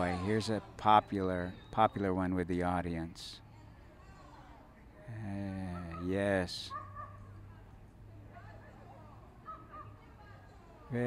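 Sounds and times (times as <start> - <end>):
crowd murmur outdoors: 0.0 - 11.0.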